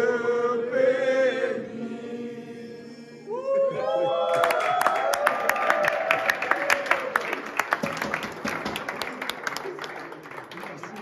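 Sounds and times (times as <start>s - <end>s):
people clapping and applauding: 4.2s - 11.0s.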